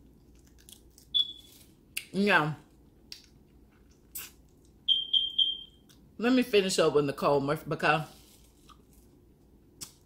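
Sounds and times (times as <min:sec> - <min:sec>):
wet mouth smacks eating: 0:03.1 - 0:04.8
thin high whistle-like tone: 0:04.9 - 0:05.8.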